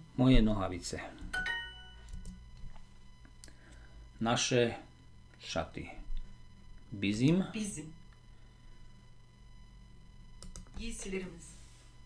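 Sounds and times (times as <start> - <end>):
computer mouse clicks: 10.4 - 10.9.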